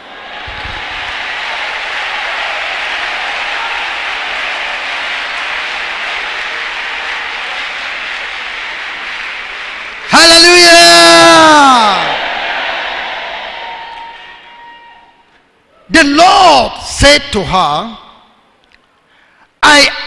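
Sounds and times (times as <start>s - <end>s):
crowd applauding: 0.0s - 14.8s.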